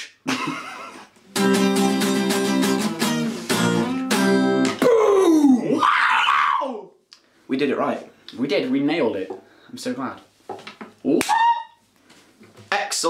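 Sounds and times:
acoustic guitar strumming chords: 1.3 - 4.8.

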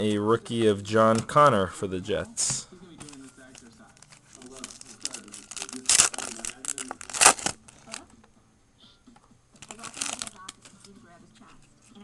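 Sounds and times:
foil wrapper crinkling and tearing: 3.1 - 8.0, 9.6 - 10.7.

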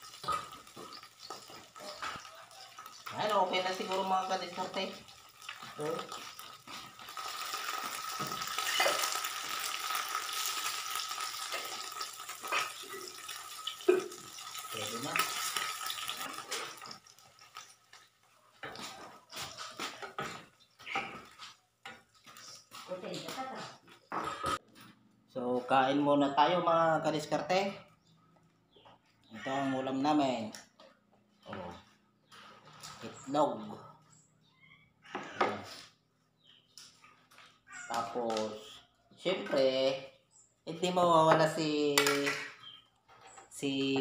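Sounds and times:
spatula scraping a pan: 0.0 - 3.1, 4.6 - 18.1
eggs sizzling in a frying pan: 0.0 - 18.8.

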